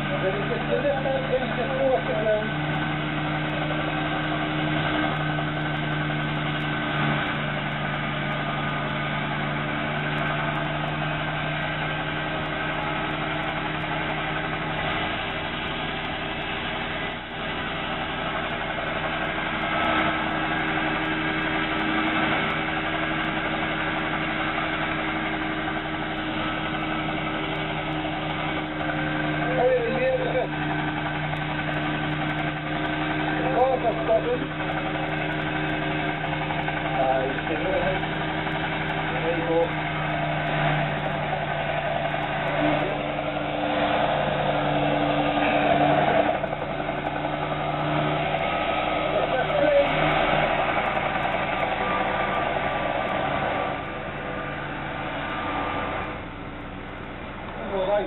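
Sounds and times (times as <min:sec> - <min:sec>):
helicopter engine running: 0:00.0 - 0:58.0.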